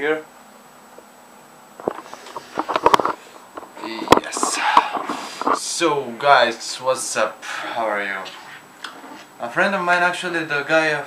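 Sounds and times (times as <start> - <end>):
camera handling knocks and rustles: 1.8 - 5.6.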